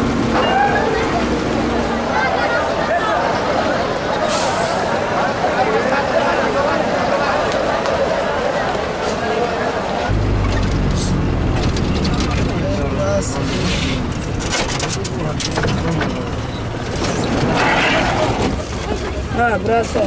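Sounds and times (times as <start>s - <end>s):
minibus engine rumbling: 0.0s - 20.0s
passengers talking: 0.0s - 20.0s
rattles and clicks: 10.2s - 17.7s.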